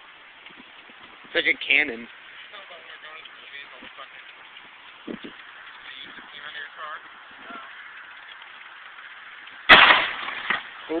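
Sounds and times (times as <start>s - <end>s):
sharp crack: 8.1s - 11.0s
loud bang: 9.7s - 10.7s.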